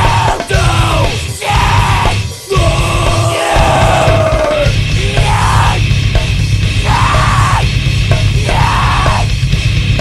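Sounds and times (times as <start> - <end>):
yelled vocals: 0.0 - 6.0, 6.6 - 9.4
metalcore band playing: 0.0 - 10.0.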